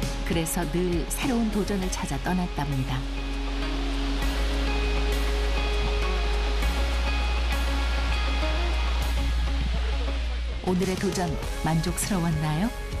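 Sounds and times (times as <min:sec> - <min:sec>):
background music with held notes: 0:00.0 - 0:13.0
waterfall rushing: 0:02.4 - 0:11.6.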